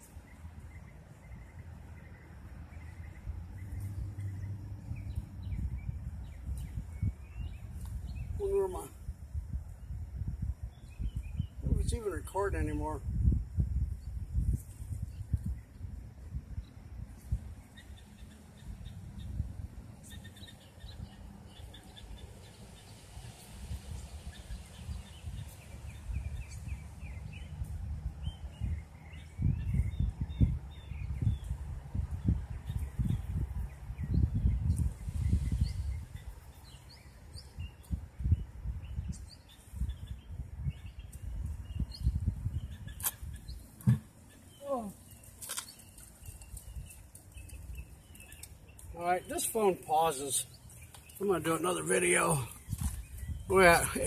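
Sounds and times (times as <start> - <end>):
wind rumbling on microphone: 0.0 - 49.9, 52.4 - 54.0
small birds chirping: 0.0 - 54.0.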